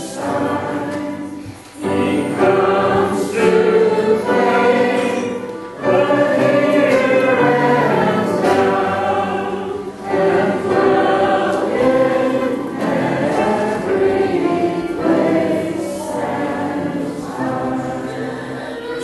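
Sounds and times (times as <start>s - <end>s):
group singing a hymn: 0.0s - 19.0s.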